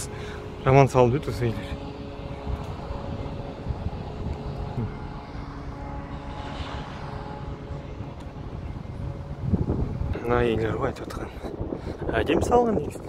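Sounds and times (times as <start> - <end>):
engine hum: 0.0 - 13.0
steady low tones: 0.0 - 13.0.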